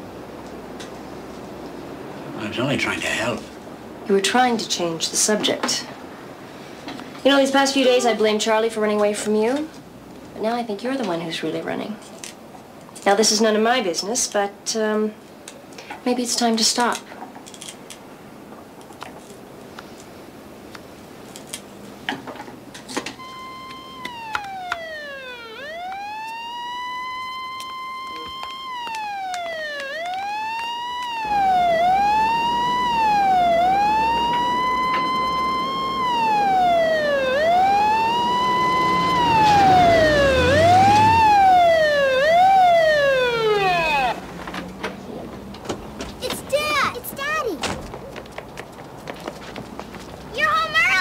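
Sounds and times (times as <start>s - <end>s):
vehicle engine rumbling: 23.1s - 46.2s
police siren wailing: 23.2s - 44.4s.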